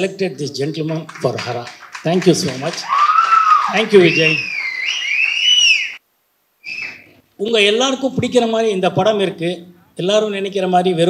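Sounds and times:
audience member whistling: 0:03.2 - 0:06.0, 0:06.6 - 0:07.1.

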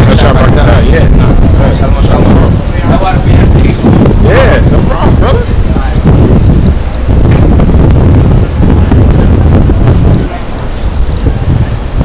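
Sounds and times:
voices: 0:00.0 - 0:12.0
wind buffeting microphone: 0:00.0 - 0:12.0.

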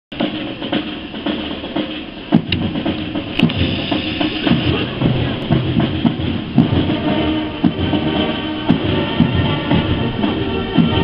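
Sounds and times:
marching drums beating: 0:00.1 - 0:11.0
voices: 0:02.7 - 0:11.0.

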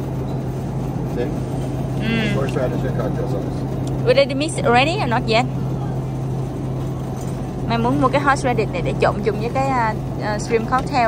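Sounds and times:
refrigerated display case humming: 0:00.0 - 0:11.0.

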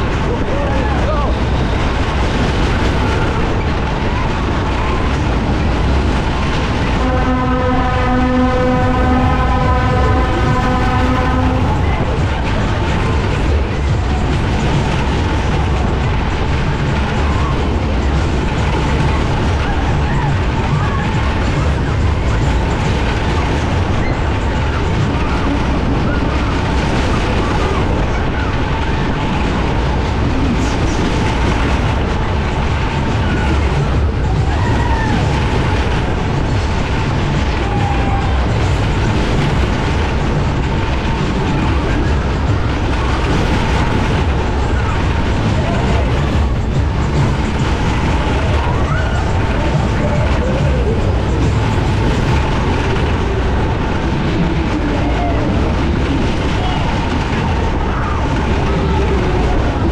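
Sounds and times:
fairground ride rushing and rumbling: 0:00.0 - 0:59.9
steady horn tone: 0:06.9 - 0:12.2.

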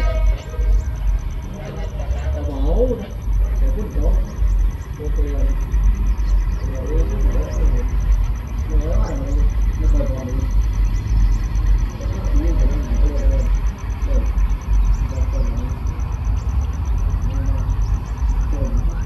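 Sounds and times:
diesel train rumbling: 0:00.0 - 0:19.0
voices talking: 0:00.0 - 0:19.0.

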